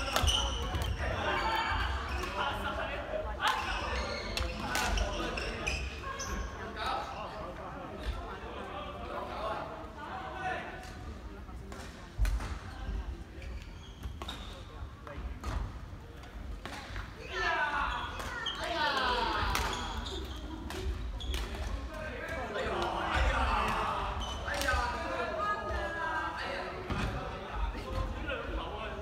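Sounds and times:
voices echoing: 0:00.0 - 0:29.0
sneakers squeaking on wooden court: 0:03.6 - 0:06.6, 0:13.4 - 0:14.7, 0:19.6 - 0:21.6
rackets hitting shuttlecock: 0:20.6 - 0:21.8.

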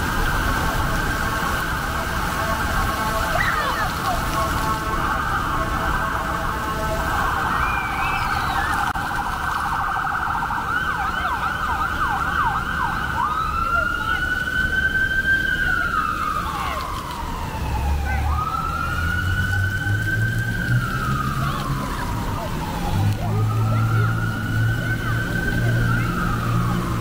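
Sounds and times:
emergency vehicle siren: 0:00.0 - 0:27.0.

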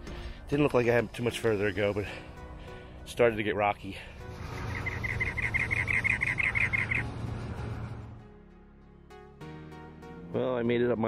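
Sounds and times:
soft background music: 0:00.0 - 0:11.0
wren singing repeated notes: 0:04.4 - 0:07.2.

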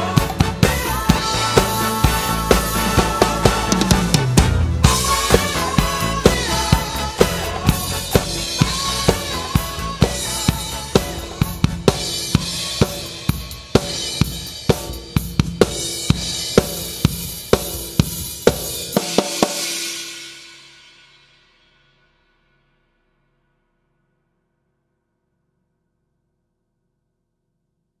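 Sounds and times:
funk disco backing track: 0:00.0 - 0:19.0
acoustic drum kit playing: 0:00.0 - 0:20.8.

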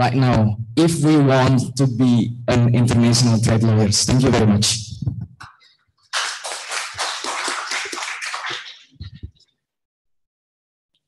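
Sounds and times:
audience applause: 0:06.1 - 0:09.0.

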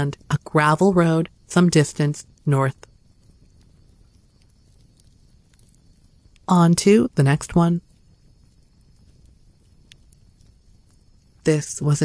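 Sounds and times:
faint low hum: 0:00.0 - 0:12.0
soft ticks: 0:07.9 - 0:11.5.

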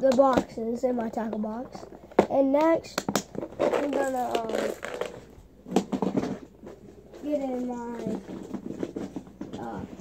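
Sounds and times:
tackle box knocks and rustles: 0:05.7 - 0:06.9.

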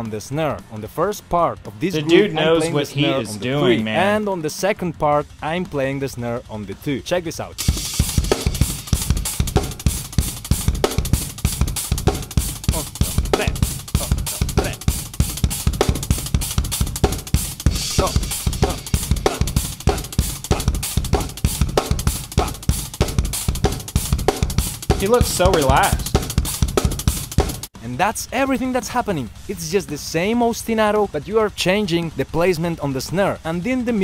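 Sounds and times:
drum kit playing fast groove: 0:01.8 - 0:04.8, 0:07.6 - 0:34.0.

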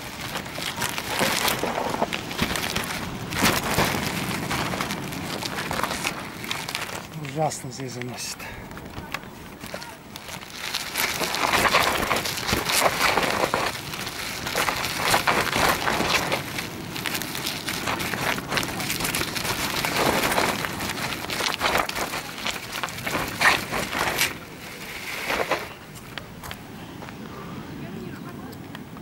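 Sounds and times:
bicycle tyres crunching gravel: 0:00.0 - 0:27.4.

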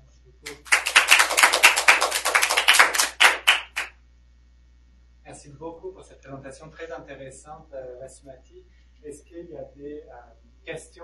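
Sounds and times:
small audience applauding: 0:00.5 - 0:03.9.

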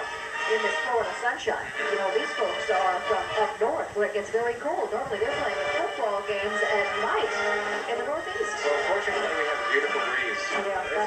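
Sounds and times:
voices: 0:00.0 - 0:11.0
marching band playing: 0:05.4 - 0:11.0.

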